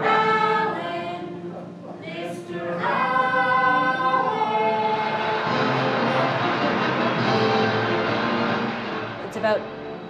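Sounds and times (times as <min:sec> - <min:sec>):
voices singing long held notes: 0:00.0 - 0:08.9.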